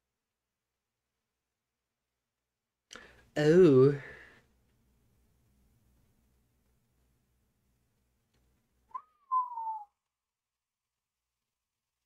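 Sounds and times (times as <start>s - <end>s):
person whistling: 8.9s - 10.0s.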